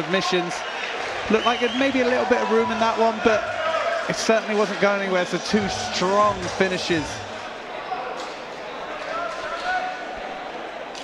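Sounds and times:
indistinct crowd chatter: 0.0 - 11.0.

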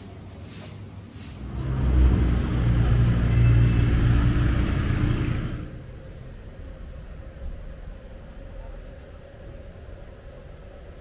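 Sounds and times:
vehicle engine passing by: 1.4 - 6.3.

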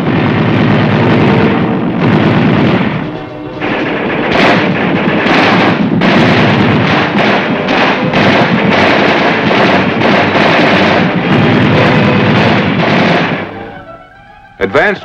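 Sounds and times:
rapid overlapping gunfire: 0.0 - 13.8
background music: 0.1 - 15.0.

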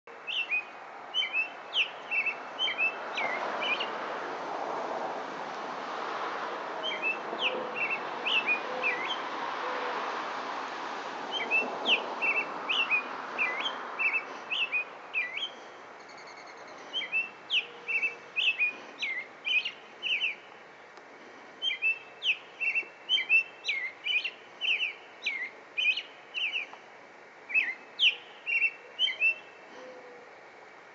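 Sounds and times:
robin singing whistled phrases: 0.3 - 3.9, 6.8 - 9.2, 11.3 - 20.5, 21.6 - 26.8, 27.5 - 29.6.

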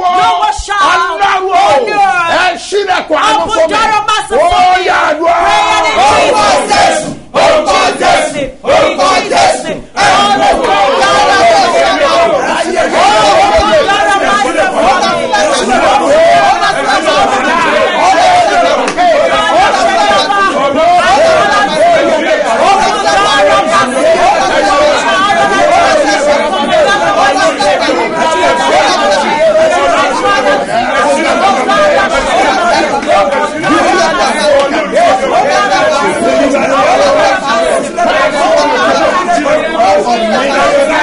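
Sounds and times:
man and woman praying aloud: 0.0 - 41.0.

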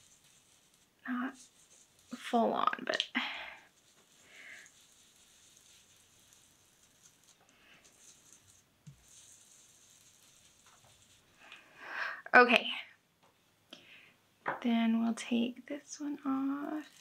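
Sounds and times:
foam dauber rubbing on paper: 0.0 - 2.8, 3.4 - 11.5, 16.3 - 17.0.

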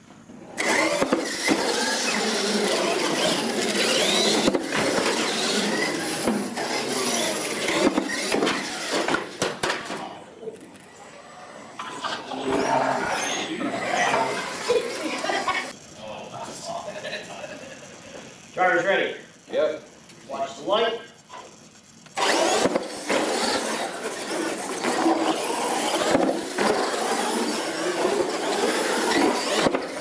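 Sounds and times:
toy car motors whining: 0.5 - 9.6, 10.5 - 30.0
tyres squealing: 11.0 - 15.7, 22.2 - 30.0.

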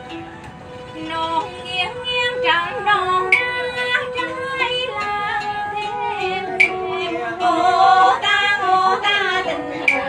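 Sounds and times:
string instruments: 0.0 - 10.0
woman singing folk song: 1.0 - 10.0.

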